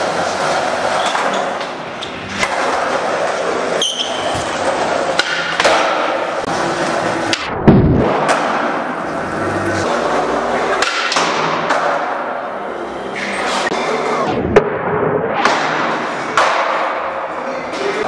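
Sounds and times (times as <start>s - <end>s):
skateboard wheels rolling on concrete: 0.0s - 7.4s
skateboard clacks: 4.4s - 8.8s, 15.4s - 18.0s
heavy thud: 7.6s - 8.3s.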